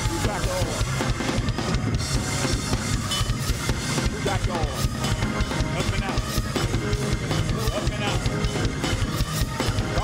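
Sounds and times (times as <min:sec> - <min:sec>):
drum kit fast beat: 0:00.0 - 0:10.0
praise music: 0:00.0 - 0:10.0.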